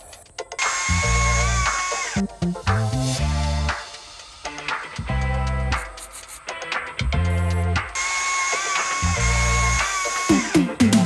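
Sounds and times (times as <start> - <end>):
background music with deep bass: 0.0 - 11.0
electric chainsaw cutting wood: 0.6 - 2.3, 8.0 - 11.0.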